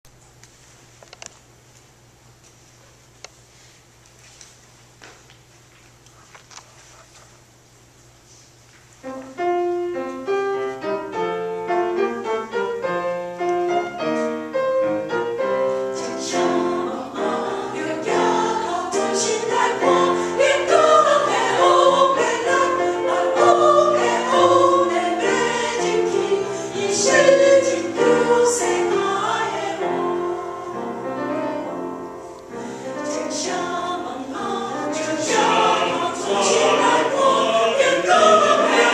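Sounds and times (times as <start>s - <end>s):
piano: 8.9s - 38.9s
church choir singing: 15.0s - 38.9s.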